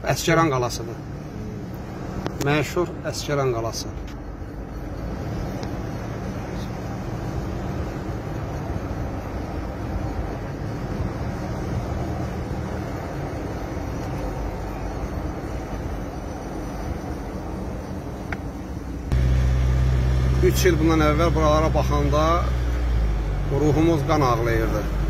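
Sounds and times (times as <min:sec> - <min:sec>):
car road and engine noise: 0:00.0 - 0:25.0.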